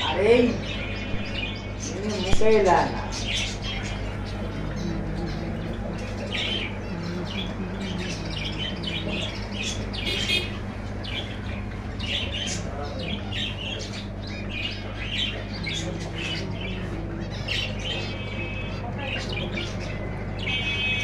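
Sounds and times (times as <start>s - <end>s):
small birds chattering and squawking: 0.0s - 21.0s
steady low hum: 0.0s - 21.0s.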